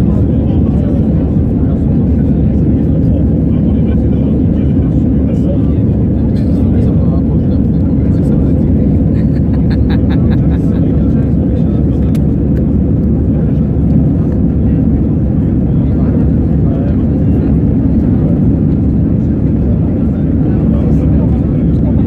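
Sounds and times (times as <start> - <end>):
faint voices: 0.0 - 22.0
jet airliner cabin rumble: 0.0 - 22.0.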